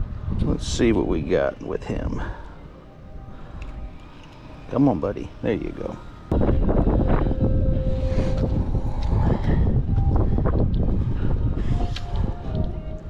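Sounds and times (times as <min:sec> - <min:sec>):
wind buffeting microphone: 0:00.0 - 0:02.3, 0:04.7 - 0:13.0.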